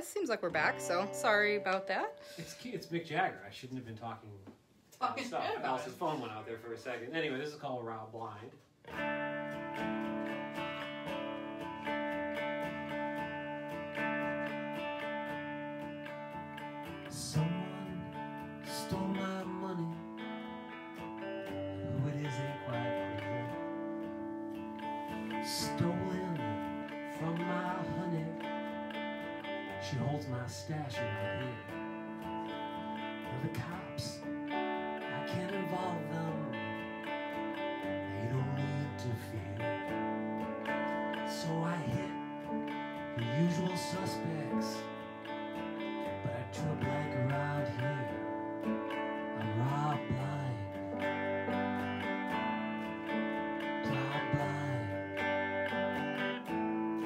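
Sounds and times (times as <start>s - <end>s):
electric guitar slow song: 0.0s - 3.2s, 8.8s - 57.0s
sustained band chords: 0.0s - 3.3s.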